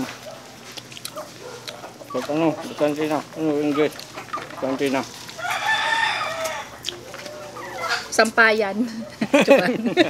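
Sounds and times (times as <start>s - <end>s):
rooster crowing: 5.3s - 8.2s.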